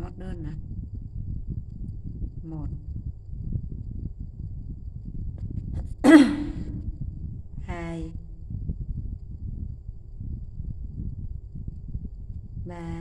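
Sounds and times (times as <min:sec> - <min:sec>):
woman making wordless sounds: 0:00.0 - 0:00.6, 0:02.5 - 0:02.8, 0:06.0 - 0:06.9, 0:07.7 - 0:08.2, 0:12.7 - 0:13.0
low steady background noise: 0:00.0 - 0:13.0.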